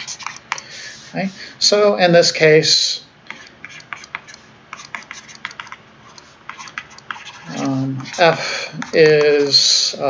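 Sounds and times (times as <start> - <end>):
stylus tapping on tablet screen: 3.3 - 7.2.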